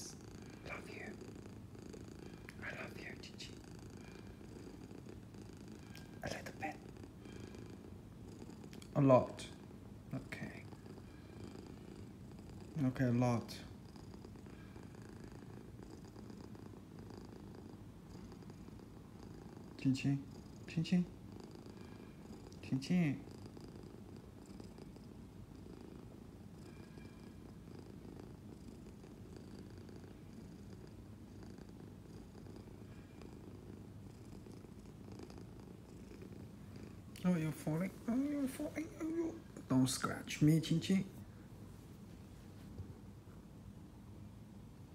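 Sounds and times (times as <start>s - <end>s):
cat purring: 0.0s - 44.9s.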